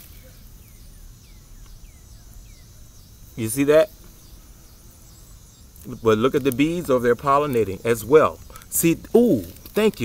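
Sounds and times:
faint background noise: 0.0s - 10.0s
small bird chirping: 0.0s - 10.0s.

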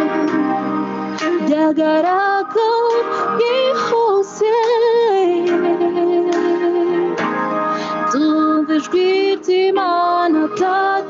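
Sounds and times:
woman singing with vibrato: 0.0s - 7.2s, 7.9s - 11.0s
musical accompaniment: 0.0s - 11.0s.

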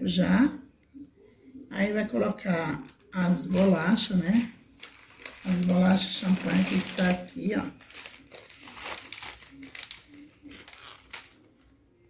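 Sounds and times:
plastic packet crinkling: 2.7s - 11.8s.

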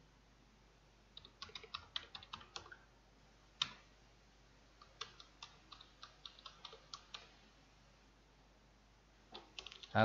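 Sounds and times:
keyboard typing: 1.2s - 2.8s, 4.8s - 7.4s, 9.3s - 10.0s.

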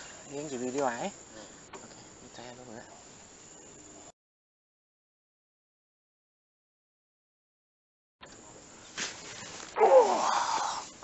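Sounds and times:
faint background noise: 0.0s - 4.1s, 8.2s - 11.0s
man exclaiming oh: 9.8s - 10.8s.

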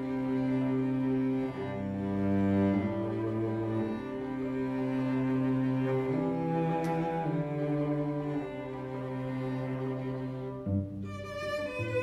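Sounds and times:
string trio bowing slowly: 0.0s - 12.0s.

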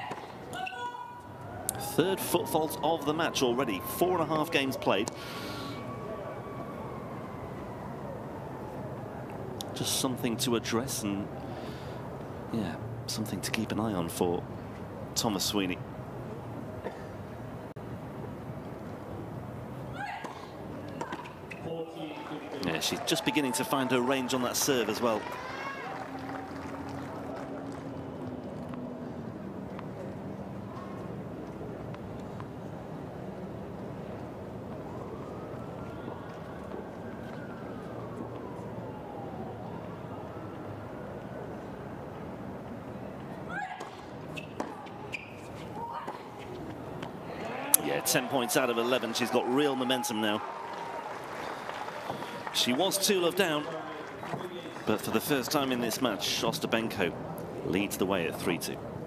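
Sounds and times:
crowd and court ambience: 0.0s - 59.0s
tennis ball strikes and bounces: 43.7s - 47.9s
shoe squeaks on court: 44.3s - 46.6s.

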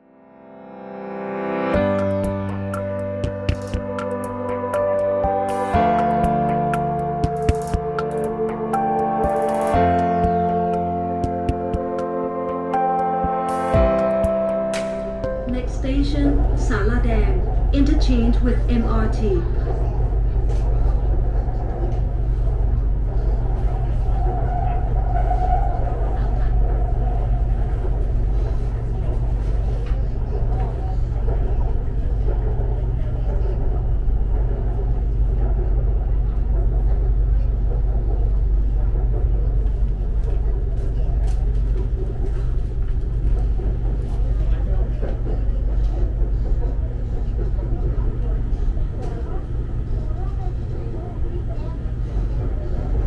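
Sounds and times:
train rumbling on track: 1.8s - 53.0s
faint passenger voices: 15.4s - 53.0s.

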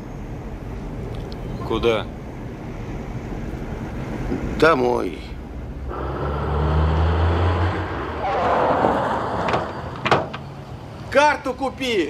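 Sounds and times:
car engine humming: 0.0s - 11.2s.

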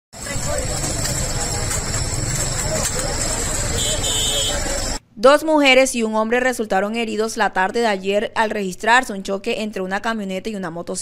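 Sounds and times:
crowd talking: 0.2s - 5.0s
vehicle engine running: 0.2s - 5.0s.

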